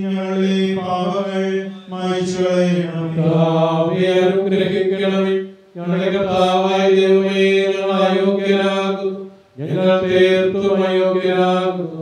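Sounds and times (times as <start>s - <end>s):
man chanting a prayer: 0.0s - 12.0s.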